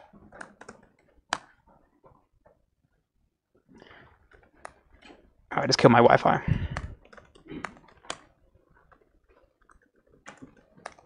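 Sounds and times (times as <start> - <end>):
laptop keyboard keys tapping: 0.0 - 1.6, 6.8 - 11.0.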